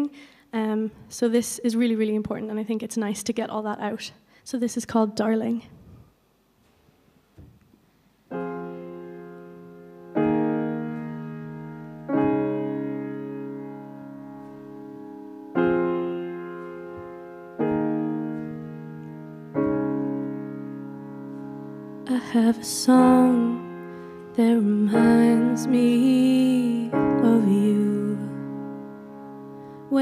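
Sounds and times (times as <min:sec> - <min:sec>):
piano chords: 0:08.2 - 0:30.0.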